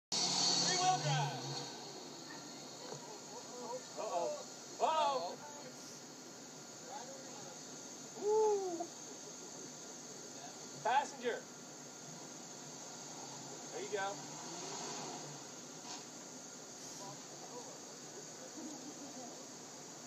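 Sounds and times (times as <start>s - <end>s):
faint high-pitched insect drone: 0.2s - 20.0s.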